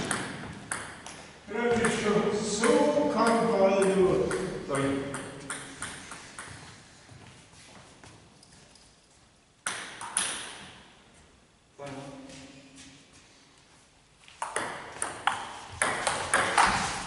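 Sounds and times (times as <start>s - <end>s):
table tennis ball struck: 0.0s - 2.0s, 2.6s - 6.5s, 14.4s - 16.8s
table tennis ball bouncing: 0.0s - 6.8s, 9.6s - 10.7s, 14.4s - 17.0s.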